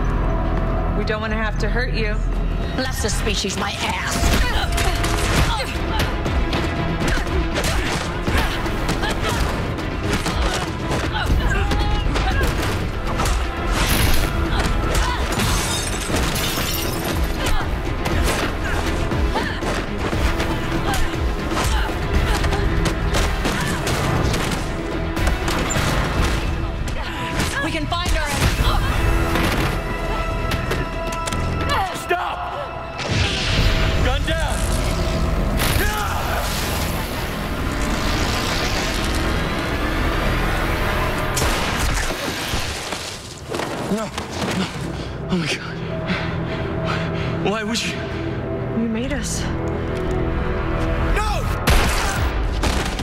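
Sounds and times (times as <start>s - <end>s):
tense low rumbling score: 0.0s - 16.3s, 17.0s - 42.2s, 43.8s - 53.0s
glass shattering: 15.4s - 17.4s.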